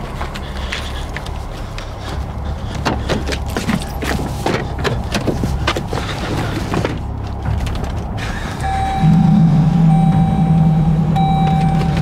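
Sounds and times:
steady low rumble: 7.4s - 12.0s.

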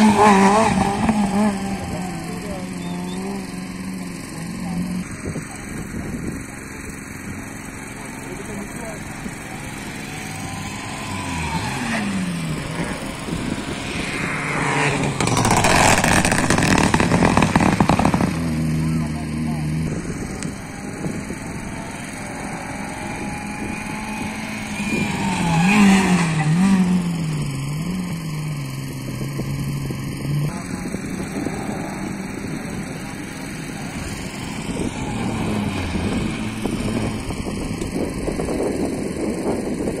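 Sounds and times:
rally cars passing at speed: 0.0s - 5.0s, 8.1s - 28.2s, 30.2s - 40.0s
car engine through gear changes: 0.0s - 40.0s.

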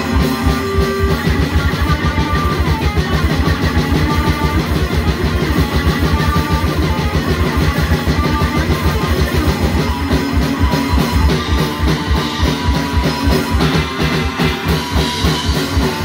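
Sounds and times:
distorted guitar riffing: 0.0s - 16.0s
fast drums: 0.0s - 16.0s.

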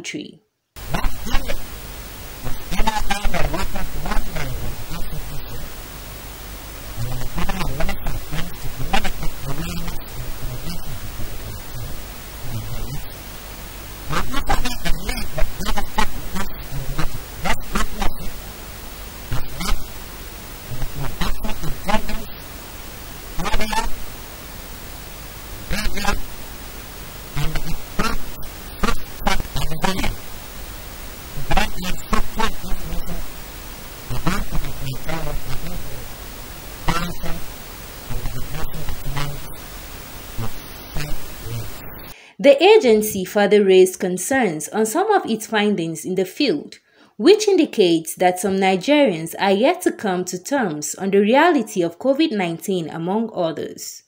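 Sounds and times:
steady hiss: 0.7s - 43.3s.

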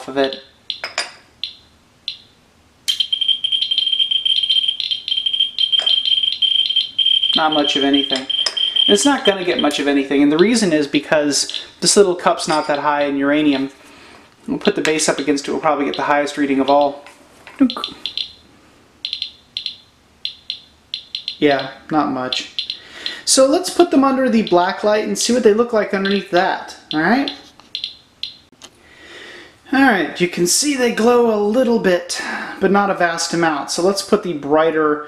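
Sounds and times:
geiger counter clicking: 0.2s - 2.3s, 2.9s - 9.8s, 15.9s - 17.1s, 17.7s - 18.4s, 19.0s - 23.2s, 24.4s - 24.7s, 26.0s - 26.3s, 26.9s - 28.5s
electronic chirps: 2.9s - 9.8s, 17.7s - 18.4s, 19.0s - 23.2s, 27.2s - 28.5s
radiation detector tone: 2.9s - 10.5s, 15.8s - 17.0s, 17.7s - 23.3s.

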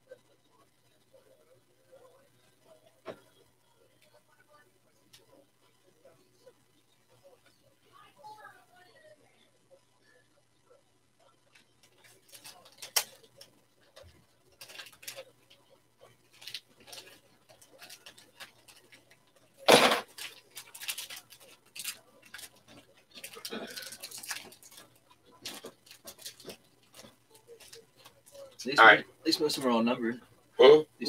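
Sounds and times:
cards and wrappers rustling: 11.5s - 30.0s.

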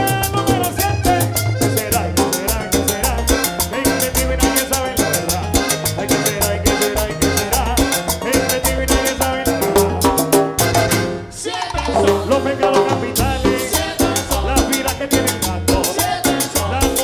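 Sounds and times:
congas and percussion: 0.0s - 17.0s
latin dance orchestra playing: 0.0s - 17.0s.

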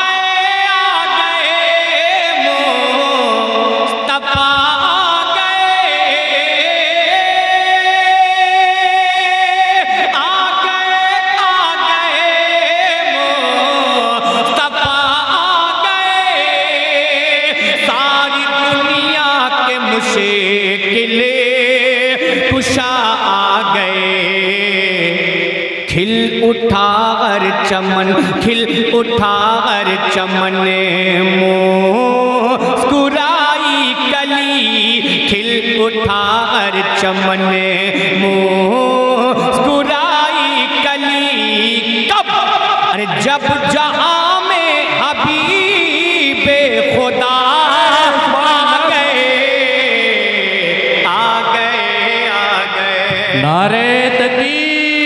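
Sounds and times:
man singing into a microphone: 0.0s - 55.0s.

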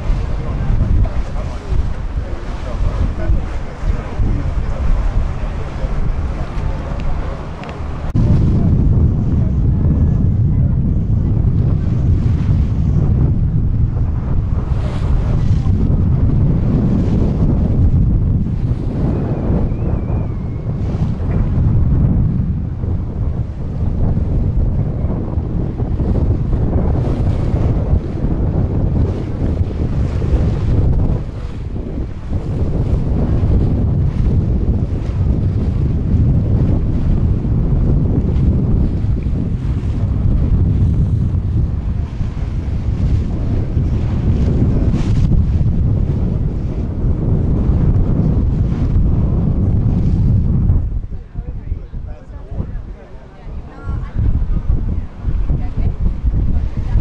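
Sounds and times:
choppy water wash: 0.0s - 57.0s
wind buffeting microphone: 0.0s - 57.0s.

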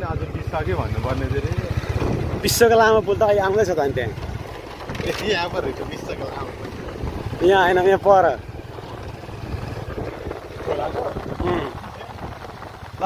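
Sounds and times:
motorcycle engine running: 0.0s - 13.0s
wind noise on microphone: 1.8s - 3.2s, 4.3s - 13.0s.

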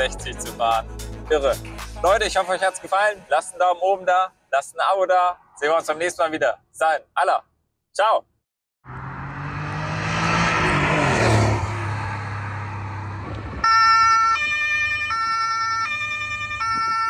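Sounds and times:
car driving past: 8.9s - 13.7s
two-tone police siren: 13.4s - 17.0s.

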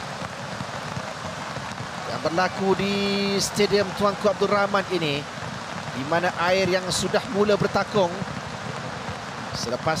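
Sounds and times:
heavy rain pouring: 0.0s - 10.0s.

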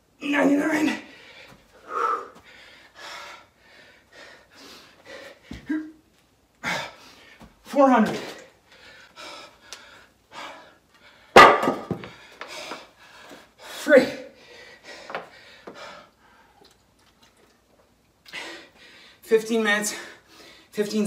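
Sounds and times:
man panting heavily: 1.0s - 5.9s, 6.6s - 7.6s, 8.6s - 11.4s, 12.1s - 16.6s, 18.3s - 19.2s, 19.9s - 20.7s
voiced exhale: 1.8s - 2.4s.

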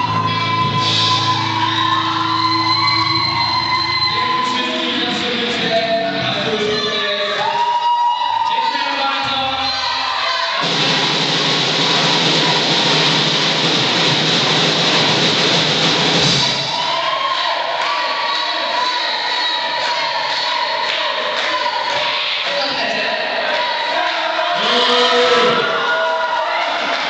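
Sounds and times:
live rock band playing: 0.0s - 4.0s
person singing: 17.8s - 26.8s.

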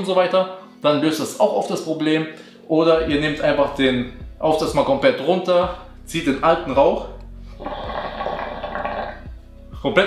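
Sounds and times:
water bubbling in hookah: 7.6s - 9.4s.

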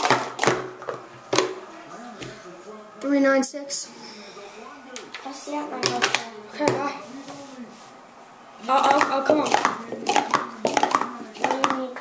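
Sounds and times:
plastic cups clacking: 0.0s - 2.4s, 5.8s - 6.8s, 8.7s - 12.0s.

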